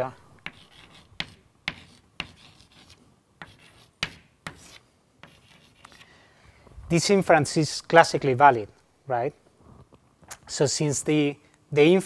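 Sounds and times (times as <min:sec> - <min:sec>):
chalk tapping on blackboard: 0:00.4 - 0:06.0
chalk scratching on blackboard: 0:00.4 - 0:06.1
man speaking: 0:06.9 - 0:09.4.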